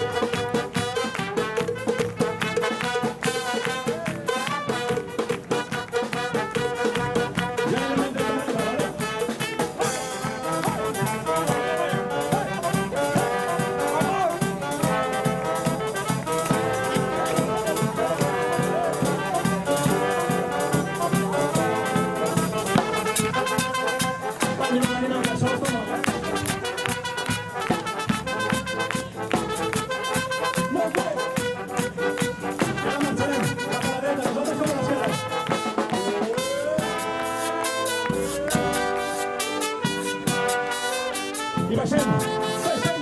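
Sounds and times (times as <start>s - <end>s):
bass drum beat: 0.0s - 43.0s
street brass band playing: 0.0s - 43.0s.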